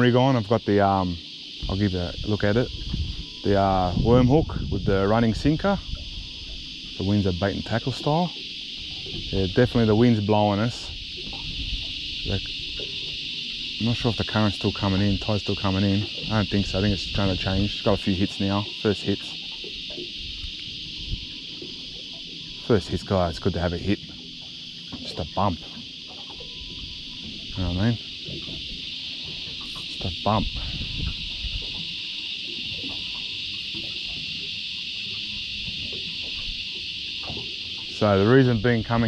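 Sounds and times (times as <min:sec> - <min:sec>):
insect chorus drone: 0:00.0 - 0:39.0
wind rumble on microphone: 0:00.9 - 0:21.8, 0:26.3 - 0:32.0.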